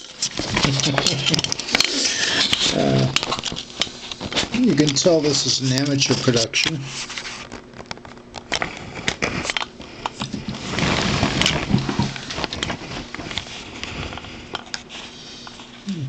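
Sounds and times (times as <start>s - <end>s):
handling rustle: 0.0s - 15.8s.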